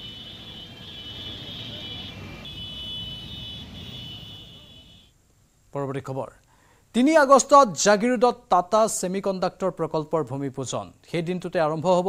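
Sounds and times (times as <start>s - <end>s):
traffic engines and tyres humming: 0.0s - 5.2s.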